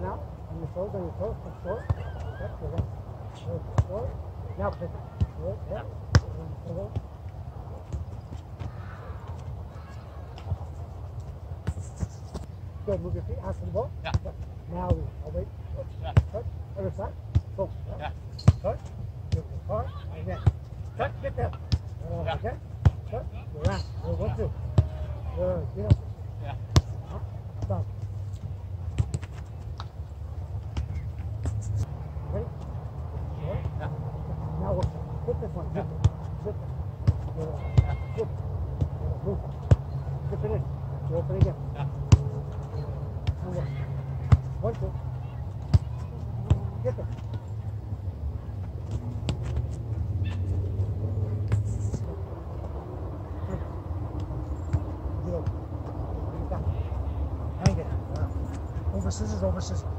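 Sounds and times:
soccer ball taps on grass: 6.0 - 9.5, 26.7 - 30.0, 41.2 - 47.4, 48.6 - 52.1, 54.2 - 56.0, 57.6 - 58.7
steady low rumble: 47.3 - 58.9.

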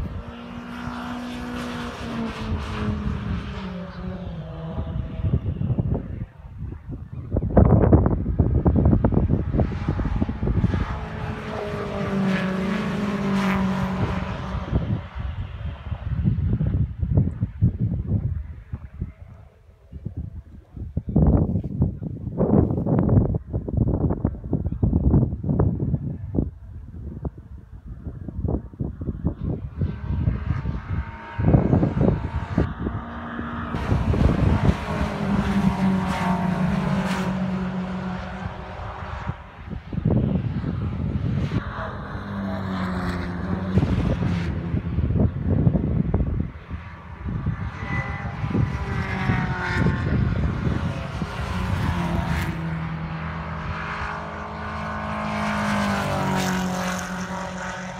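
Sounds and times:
racing cars passing by: 0.0 - 19.3, 28.8 - 57.9
wind buffeting microphone: 0.0 - 57.9.

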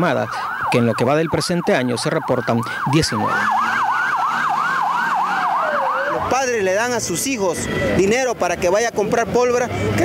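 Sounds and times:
ambulance siren yelp: 0.0 - 10.0
siren tone sliding down: 0.5 - 8.1.

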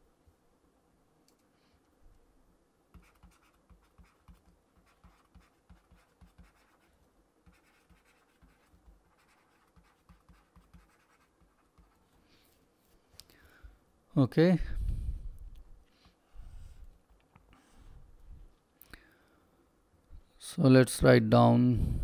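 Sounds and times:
stylus tapping and scratching on tablet: 2.9 - 12.2.

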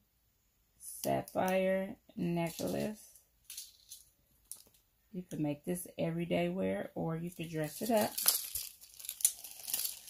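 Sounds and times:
metal jewelry jingling: 2.5 - 4.6, 7.6 - 10.0.

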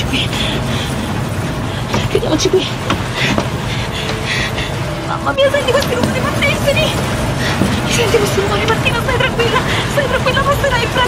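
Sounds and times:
strong storm wind gusting: 0.0 - 11.0.

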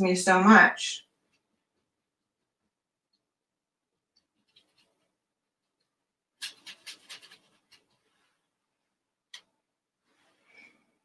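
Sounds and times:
paintbrush scrubbing: 6.4 - 8.5.

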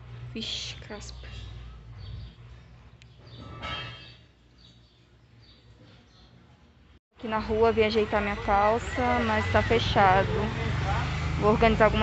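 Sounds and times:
bird chirping: 0.8 - 6.4.

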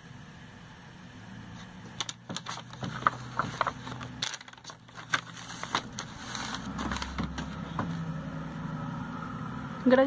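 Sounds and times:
paper pages turning: 1.6 - 8.0.

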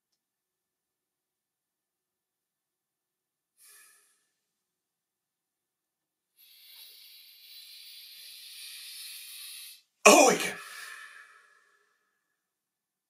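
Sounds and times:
man breathing in deeply: 6.4 - 12.3.

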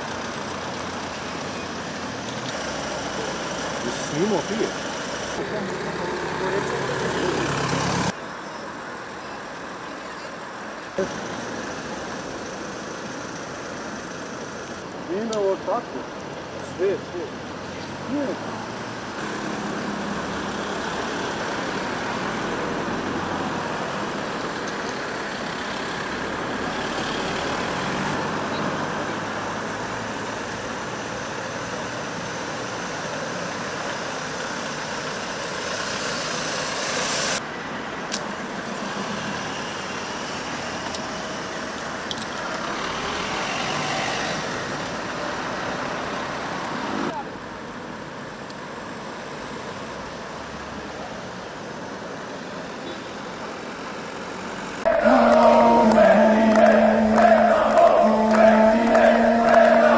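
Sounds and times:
road traffic hiss: 0.0 - 59.9
car passing: 5.4 - 8.2, 54.4 - 59.9.

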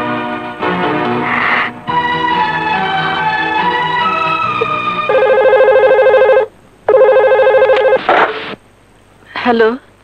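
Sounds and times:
telephone warbling ring: 5.1 - 8.0.

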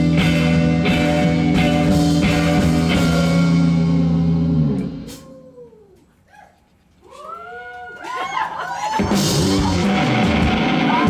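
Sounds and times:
live rock band playing: 0.0 - 5.2, 9.0 - 11.0
electric guitar notes gliding in pitch: 9.0 - 11.0.

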